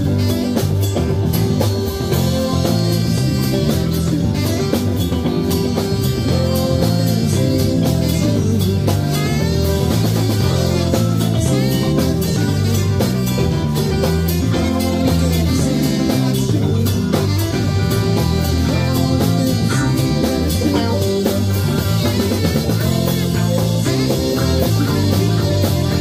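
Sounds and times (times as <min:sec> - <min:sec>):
drum kit: 0:00.0 - 0:26.0
electric guitars: 0:00.0 - 0:26.0
keyboard: 0:00.0 - 0:26.0.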